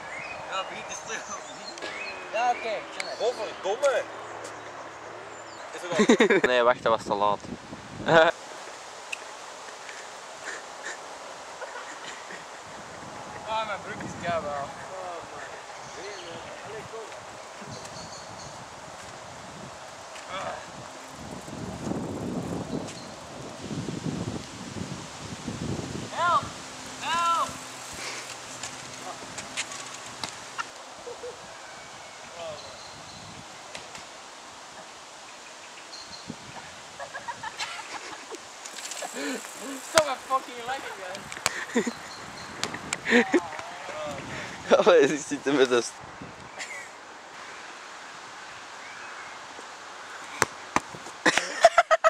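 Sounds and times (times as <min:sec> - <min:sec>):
leaves rustling: 0:00.0 - 0:51.6
wind: 0:00.0 - 0:52.0
steady hiss: 0:05.8 - 0:52.0.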